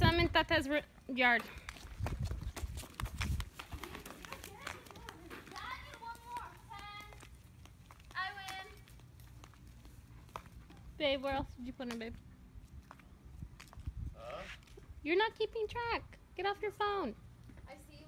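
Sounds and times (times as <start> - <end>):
footsteps on concrete: 0.2 - 14.9.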